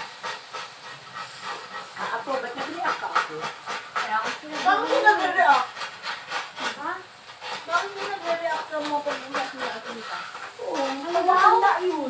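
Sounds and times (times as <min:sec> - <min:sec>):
meat sizzling in frying pans: 0:00.0 - 0:12.0.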